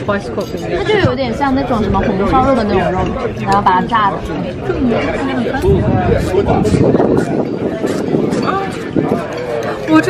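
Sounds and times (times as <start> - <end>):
background chatter: 0.0 - 10.0
people talking: 0.0 - 10.0.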